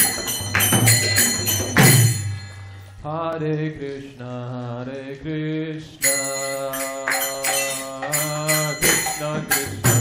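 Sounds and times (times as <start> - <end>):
hand cymbals clashing: 0.0 - 3.0, 6.0 - 10.0
man chanting: 3.0 - 10.0.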